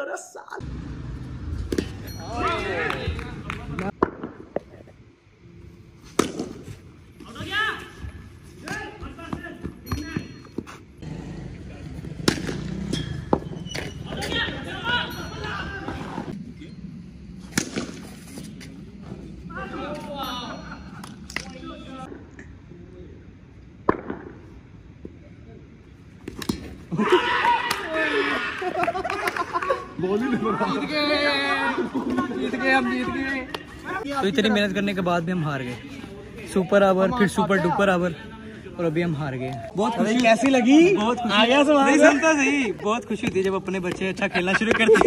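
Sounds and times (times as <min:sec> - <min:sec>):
players calling out: 0:11.0 - 0:16.8, 0:26.8 - 0:34.9
cricket bat hitting ball: 0:12.2 - 0:14.3, 0:23.8 - 0:24.4.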